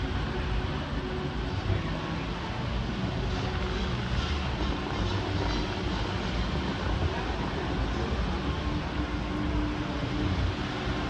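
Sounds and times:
fountain water rushing: 0.0 - 11.0.

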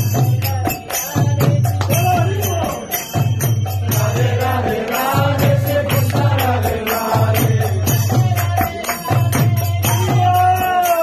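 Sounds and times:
drum beat: 0.0 - 11.0
hand cymbals: 0.0 - 11.0
group chanting: 1.9 - 11.0.

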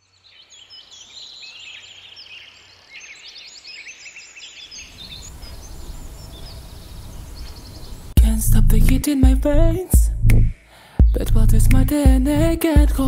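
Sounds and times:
birds chirping and singing: 0.0 - 8.2
low rumble: 8.2 - 13.0.

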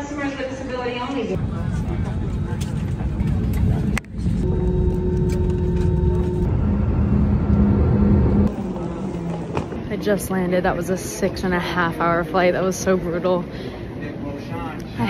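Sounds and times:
jet engine rumble with whine: 1.4 - 9.8.

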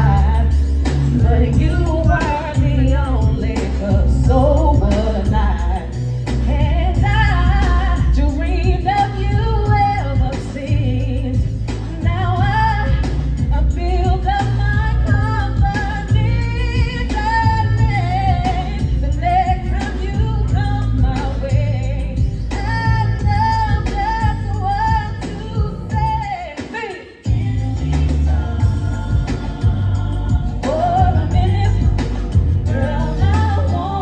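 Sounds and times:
backing track with heavy bass beat: 0.0 - 34.0
woman singing into a microphone: 0.0 - 34.0.

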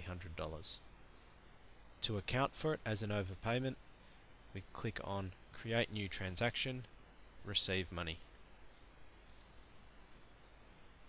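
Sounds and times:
computer mouse click: 9.2 - 9.6.

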